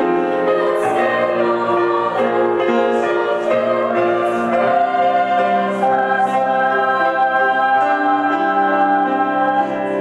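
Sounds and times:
choir singing: 0:00.0 - 0:10.0
piano accompaniment: 0:00.0 - 0:10.0.

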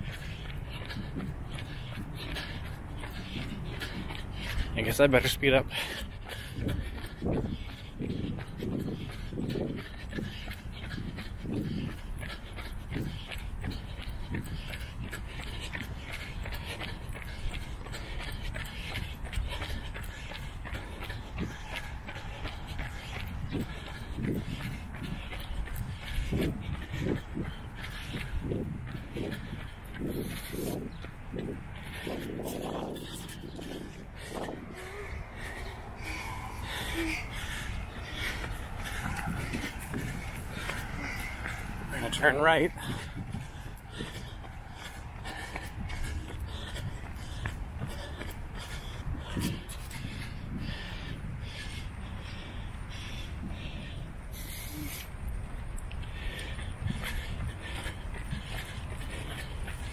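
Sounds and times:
runner breathing heavily: 0:00.0 - 0:59.9
steady low rumble: 0:00.0 - 0:59.9.

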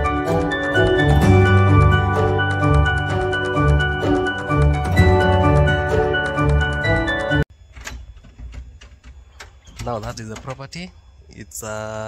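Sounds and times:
man speaking: 0:09.8 - 0:12.0.

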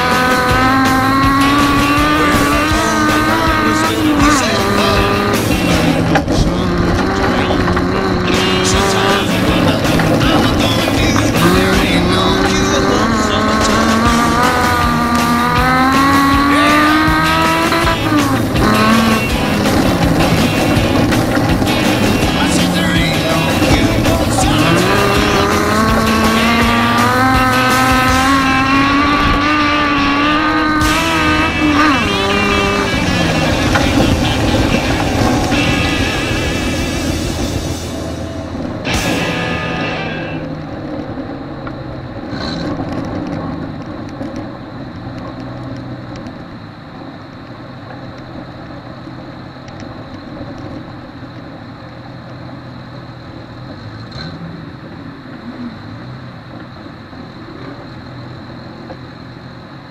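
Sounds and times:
race car engine revving: 0:00.0 - 0:46.7, 0:48.1 - 0:59.9.

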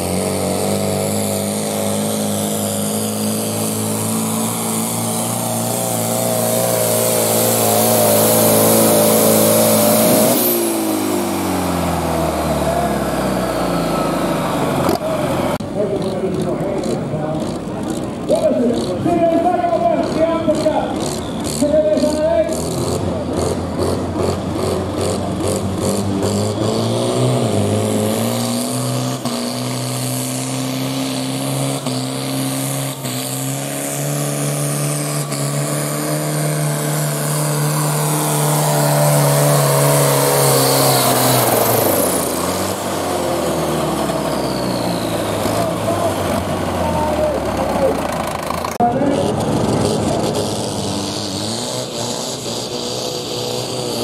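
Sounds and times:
diesel tractor engine under load: 0:00.0 - 0:54.0.

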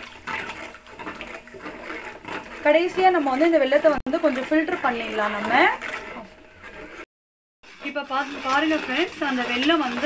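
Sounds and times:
water stirred and sloshed in pot: 0:00.0 - 0:10.0.

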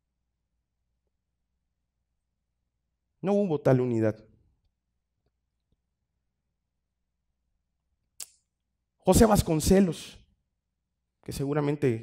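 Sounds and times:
man speaking: 0:03.2 - 0:04.3, 0:09.1 - 0:10.2, 0:11.3 - 0:12.0.

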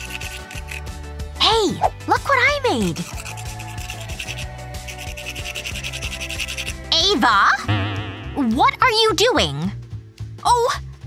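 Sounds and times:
emery board filing fingernail: 0:00.0 - 0:00.9, 0:02.9 - 0:06.9
background music with steady beat: 0:00.0 - 0:11.0.

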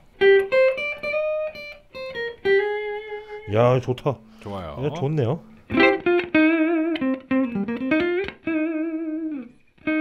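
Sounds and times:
clean electric guitar melody: 0:00.0 - 0:03.5, 0:05.5 - 0:10.0.

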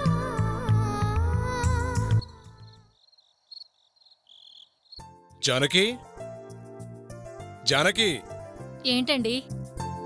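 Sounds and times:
high cricket-like chirps: 0:02.2 - 0:05.2.

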